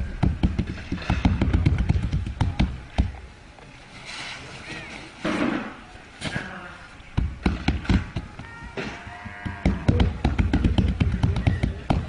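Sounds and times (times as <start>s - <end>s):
dull thumps and knocks: 0.1s - 3.2s, 7.2s - 12.0s.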